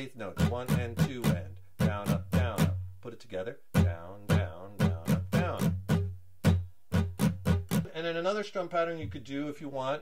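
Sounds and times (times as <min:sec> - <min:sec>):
acoustic guitar strumming: 0:00.0 - 0:08.2.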